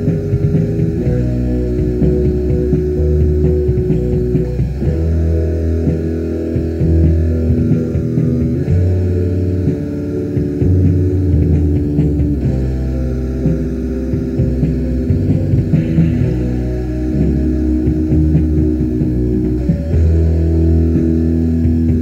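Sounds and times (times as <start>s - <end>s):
distorted guitar and bass chords: 0.0s - 22.0s
steady low hum: 0.0s - 22.0s.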